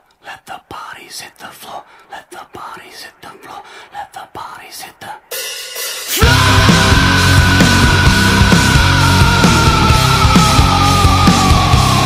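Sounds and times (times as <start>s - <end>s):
rhythmic whispered voice: 0.0s - 5.5s.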